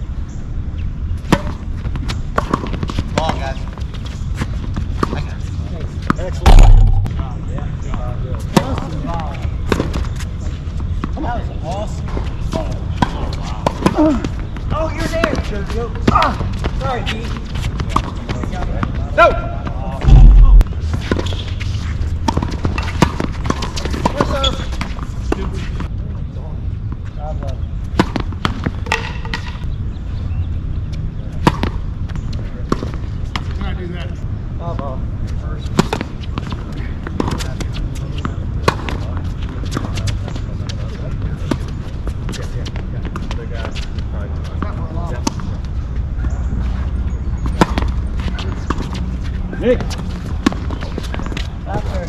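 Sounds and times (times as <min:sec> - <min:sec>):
tennis balls struck by rackets: 0:01.2 - 0:03.8, 0:06.0 - 0:10.2, 0:10.8 - 0:25.6, 0:27.9 - 0:29.7, 0:31.3 - 0:33.6, 0:35.7 - 0:43.8, 0:44.5 - 0:51.5
balls bouncing on hard court: 0:01.2 - 0:10.2, 0:10.8 - 0:21.6, 0:22.2 - 0:25.6, 0:46.2 - 0:49.1
loud low thump: 0:06.4 - 0:07.2, 0:20.0 - 0:21.0
steady low rumble: 0:06.4 - 0:07.6, 0:20.0 - 0:21.1.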